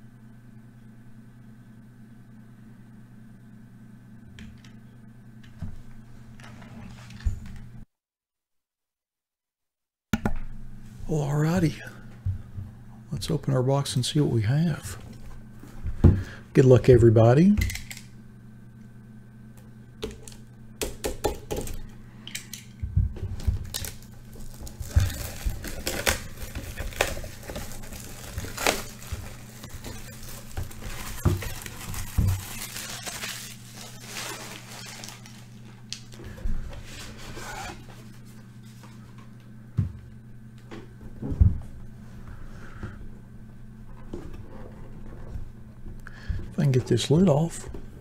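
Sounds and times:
steady low hum: 0.0s - 7.9s, 10.2s - 48.0s
plastic wrap crinkling and tearing: 23.4s - 36.2s
utility knife slitting plastic wrap: 23.7s - 35.5s.

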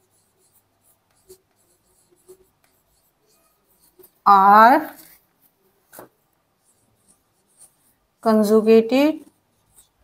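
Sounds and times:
marker pen strokes on whiteboard: 0.0s - 10.0s.

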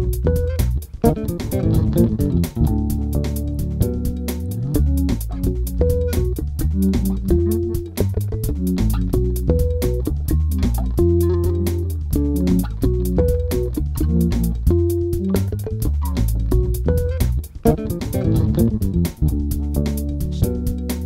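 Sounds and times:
backing loop with steady beat: 0.0s - 21.0s
electric bass line played with fingers: 0.0s - 21.0s.

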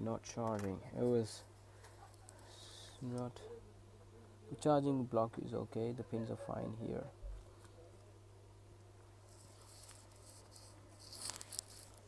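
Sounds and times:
low steady hum: 0.0s - 12.0s
rustling and scraping: 9.2s - 12.0s.

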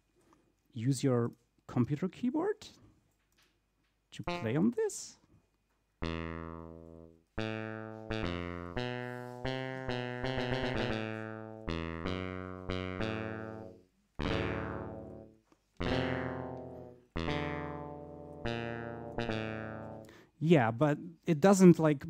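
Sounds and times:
synthesizer notes and chords: 4.2s - 4.8s, 6.0s - 20.1s.

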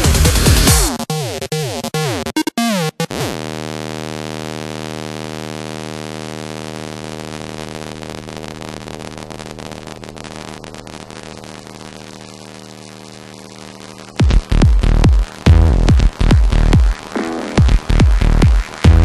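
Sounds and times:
synthesizer drone: 9.6s - 19.0s.

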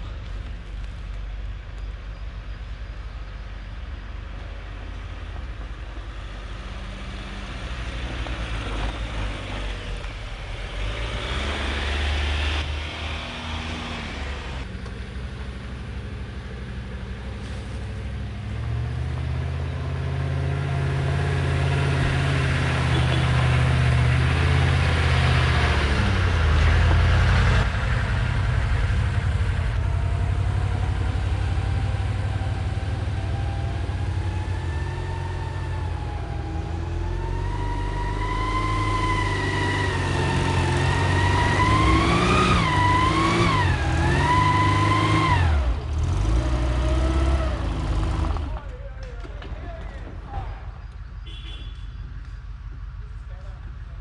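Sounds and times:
truck engine at low revs: 0.0s - 54.0s.

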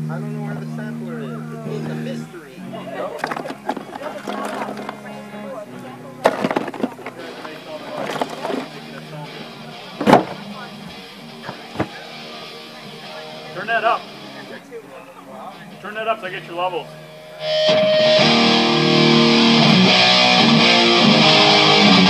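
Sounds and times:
bass guitar: 0.0s - 14.6s, 16.8s - 22.0s
person speaking: 0.0s - 17.0s
electric guitars: 0.0s - 22.0s
sharp knocks and thumps: 6.2s - 8.7s, 10.0s - 10.4s.

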